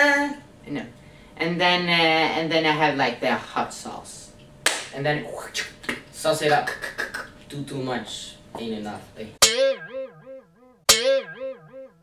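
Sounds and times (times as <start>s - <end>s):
guitar jingle with wavering melody: 9.4s - 12.0s.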